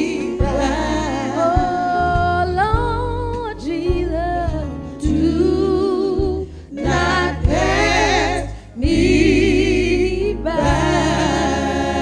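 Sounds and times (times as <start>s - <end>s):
gospel singing with vibrato: 0.0s - 4.1s, 4.7s - 12.0s.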